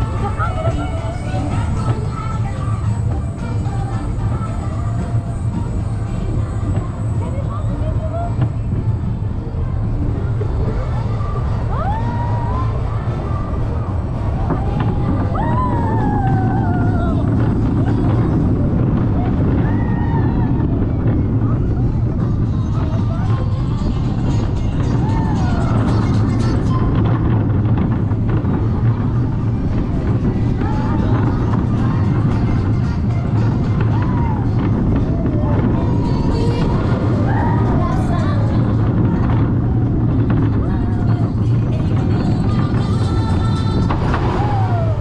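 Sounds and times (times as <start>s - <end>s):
roller coaster wheels rumbling on track: 0.0s - 45.0s.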